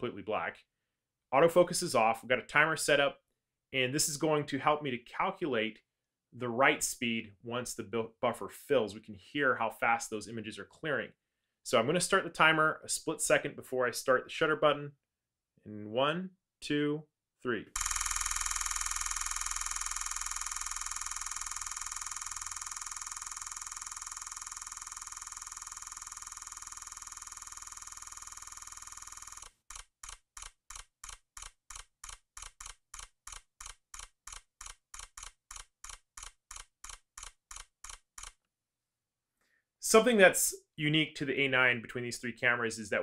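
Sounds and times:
camera shutter burst: 17.8s - 25.8s.

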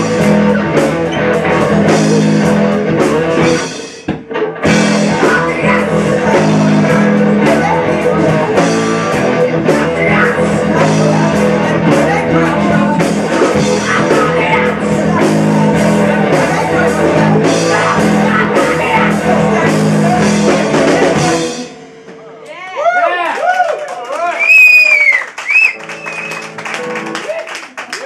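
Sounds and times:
blues-rock band playing: 0.0s - 22.8s, 25.3s - 27.3s
audience whooping and cheering: 22.4s - 28.0s.

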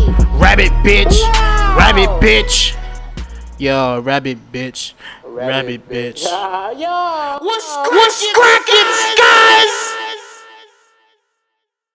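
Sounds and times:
rap beat: 0.0s - 3.6s, 7.5s - 10.7s
high sung vocal note: 0.7s - 3.1s.

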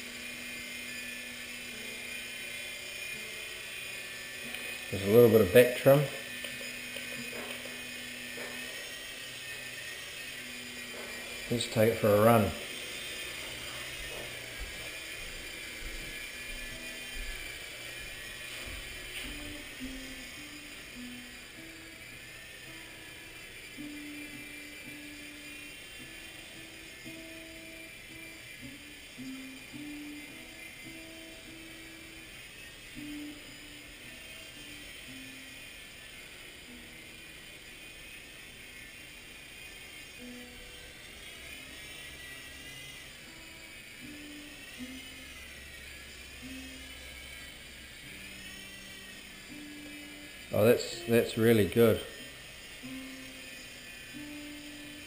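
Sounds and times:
faint music with stepping melody: 0.0s - 55.0s
toy helicopter rotor whine: 0.0s - 55.0s.

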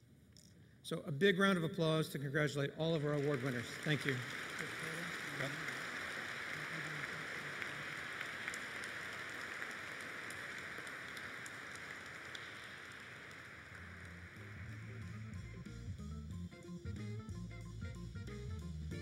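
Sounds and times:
audience applauding: 2.8s - 15.7s
music: 13.7s - 19.0s.

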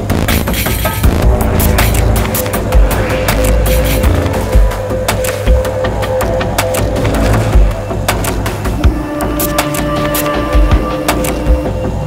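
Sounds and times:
music with heavy beat: 0.0s - 12.0s.

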